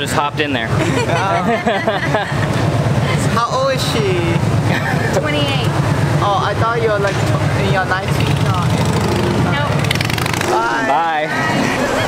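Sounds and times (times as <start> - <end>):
city street traffic rumble: 0.0 - 12.0
men laughing: 0.6 - 3.0, 4.6 - 5.2.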